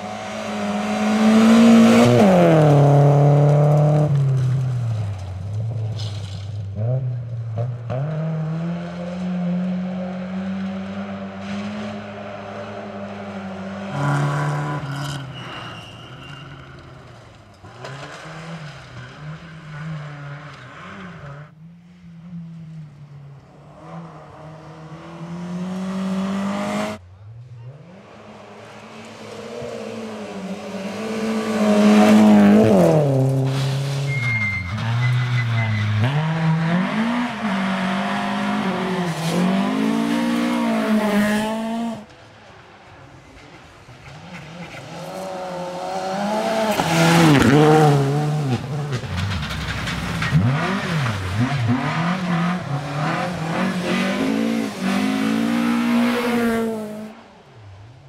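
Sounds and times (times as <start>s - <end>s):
rally car engines revving: 0.0s - 57.8s.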